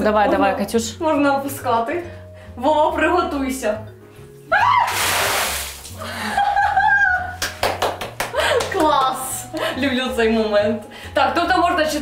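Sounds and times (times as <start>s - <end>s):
water splashing down: 4.7s - 6.1s
woman laughing cry: 6.0s - 7.4s.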